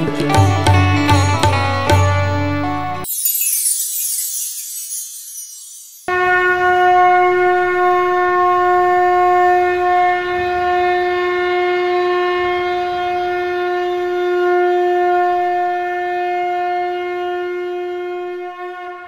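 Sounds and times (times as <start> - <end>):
conch shell blown: 6.1 - 19.0.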